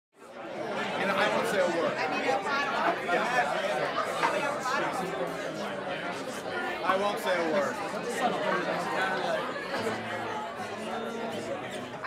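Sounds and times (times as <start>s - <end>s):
group of people chatting: 0.2s - 12.0s.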